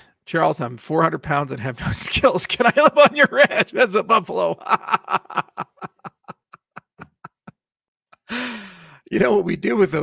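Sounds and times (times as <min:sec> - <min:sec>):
man laughing breathily: 0:04.6 - 0:07.6, 0:08.2 - 0:09.0.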